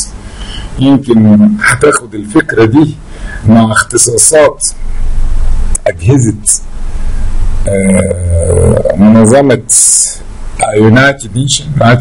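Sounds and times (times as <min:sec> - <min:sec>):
man saying uhh: 0:07.6 - 0:09.2.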